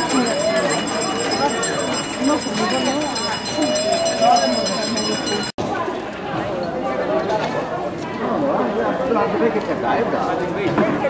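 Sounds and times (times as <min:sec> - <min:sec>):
crowd murmur of voices: 0:00.0 - 0:11.0.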